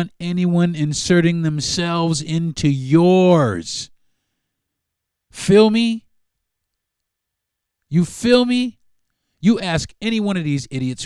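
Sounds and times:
man speaking: 0.0 - 3.9, 5.3 - 6.1, 7.9 - 8.8, 9.4 - 11.0.

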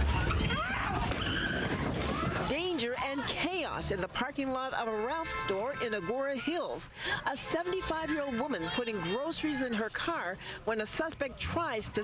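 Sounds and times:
people shouting: 0.0 - 2.5.

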